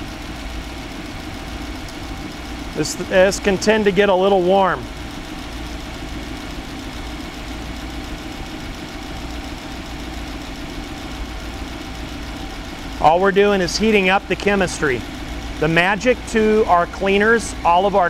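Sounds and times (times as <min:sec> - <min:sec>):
engine idling: 0:00.0 - 0:18.0.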